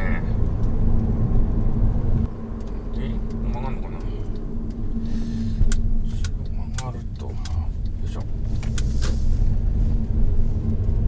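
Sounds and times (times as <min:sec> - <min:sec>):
engine and road rumble: 0:00.0 - 0:11.0.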